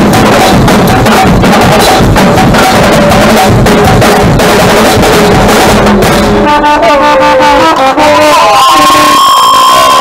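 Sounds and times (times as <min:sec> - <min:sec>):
drumming: 0:00.0 - 0:10.0.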